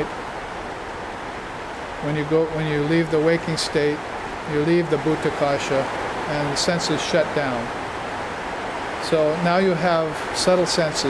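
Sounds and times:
flooded gully rushing: 0.0s - 11.0s.

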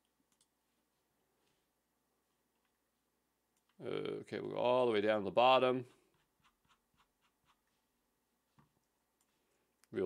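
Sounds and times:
computer mouse clicks: 0.3s - 0.6s.

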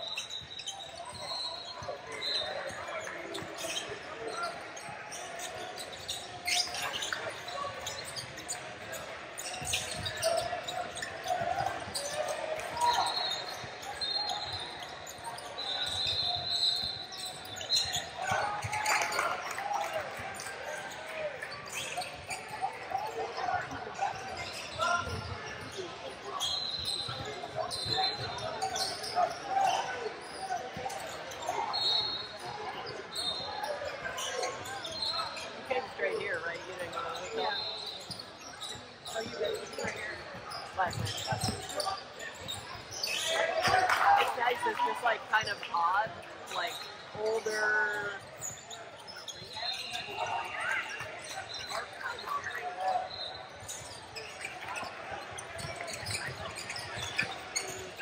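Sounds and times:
shoe squeaks: 0.0s - 58.0s
echoing voices: 43.7s - 46.1s.

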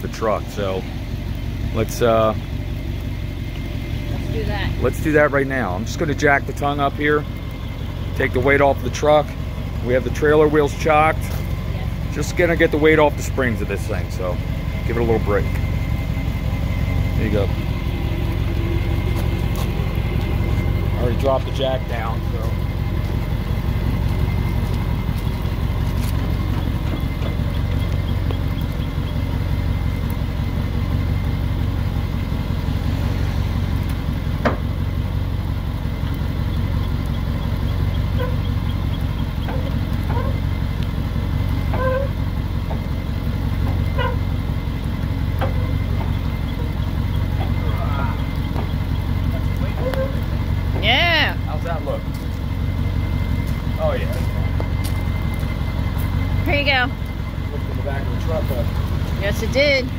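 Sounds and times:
diesel engine idling: 0.0s - 59.9s
short squeaks: 22.5s - 29.6s, 36.4s - 40.8s, 41.5s - 43.0s, 43.6s - 50.6s.

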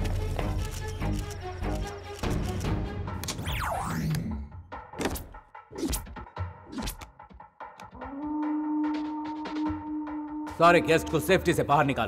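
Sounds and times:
tense film score: 0.0s - 12.0s.

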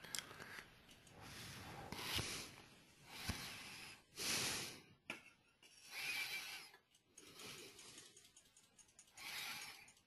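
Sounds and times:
faint breaths close to microphone: 0.0s - 5.0s, 5.7s - 8.3s, 9.0s - 10.0s.

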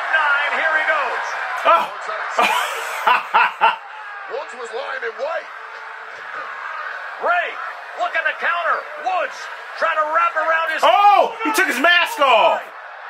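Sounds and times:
man chuckling: 2.4s - 3.9s.

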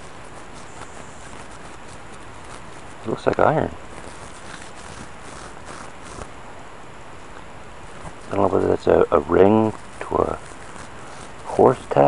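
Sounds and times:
gloved hand sifting through dirt: 0.0s - 6.3s, 8.0s - 12.0s.

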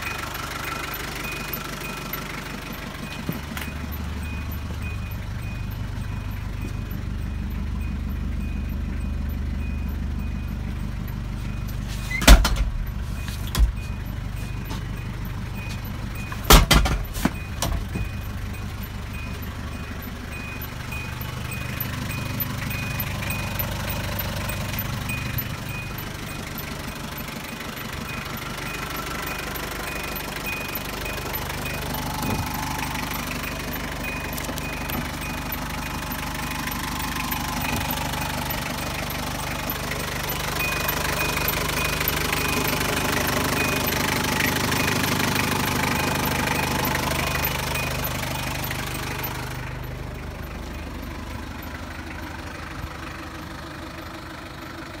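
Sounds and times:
faint repeating high beep: 0.0s - 12.2s, 12.8s - 51.7s
diesel engine idling: 0.0s - 55.0s.

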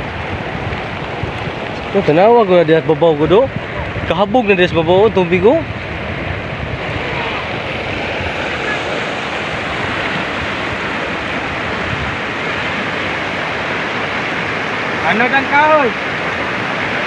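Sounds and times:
floodwater rushing: 0.0s - 17.0s.

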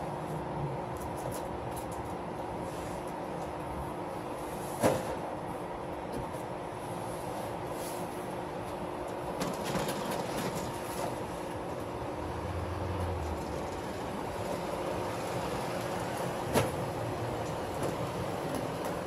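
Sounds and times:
outdoor traffic noise: 0.0s - 19.0s.

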